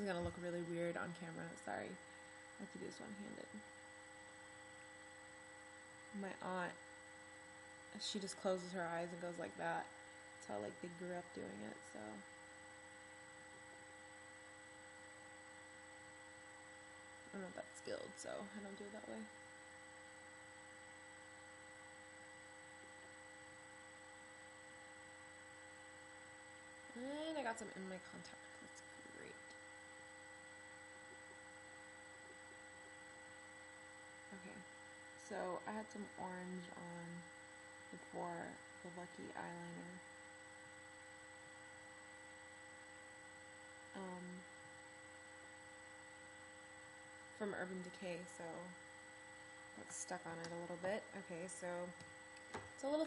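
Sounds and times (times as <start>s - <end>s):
electrical hum: 0.0s - 53.0s
faint high whine: 0.0s - 53.0s.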